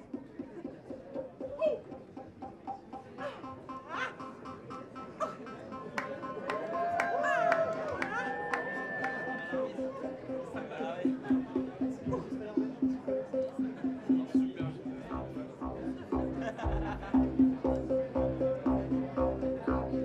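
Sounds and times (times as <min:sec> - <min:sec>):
modular synthesizer tones: 0:08.7 - 0:20.0
pulsing low synth note: 0:13.6 - 0:20.0.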